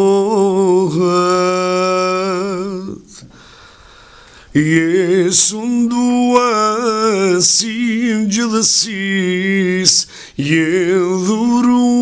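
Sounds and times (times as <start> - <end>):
man singing a hymn: 0.0 - 3.4, 4.5 - 12.0.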